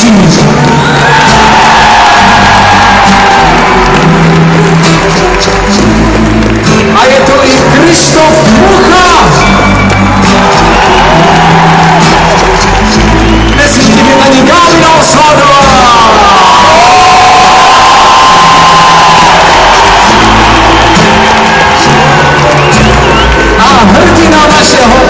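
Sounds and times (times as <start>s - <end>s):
crowd cheering and whooping: 0.6s - 6.9s, 8.5s - 25.0s.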